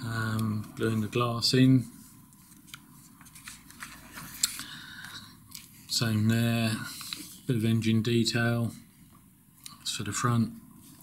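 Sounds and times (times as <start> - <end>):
paper pages rustling: 1.8 - 6.0
paper crisp clicks and crinkles: 2.3 - 4.6.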